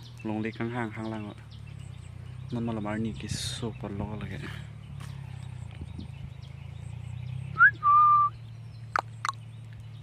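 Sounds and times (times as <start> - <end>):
short rising whistle: 7.6 - 8.4.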